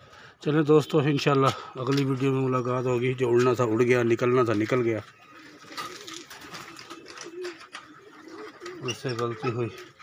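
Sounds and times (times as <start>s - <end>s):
pigeons cooing: 2.4s - 10.0s.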